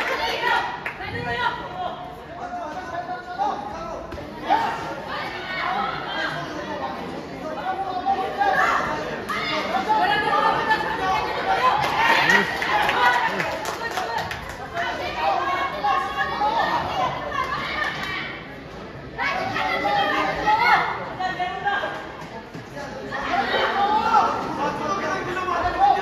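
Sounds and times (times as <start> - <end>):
spectators shouting and chattering: 0.0 - 26.0.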